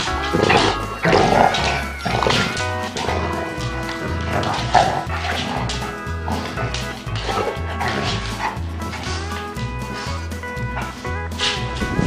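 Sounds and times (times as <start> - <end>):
background music with beat: 0.0 - 12.0
dogs barking: 0.0 - 12.0.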